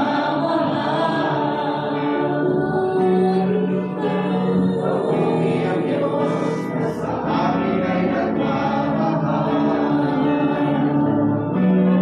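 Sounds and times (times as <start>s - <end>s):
backing voices singing: 0.0s - 12.0s
electric guitar: 0.0s - 12.0s
woman singing lead: 0.0s - 12.0s.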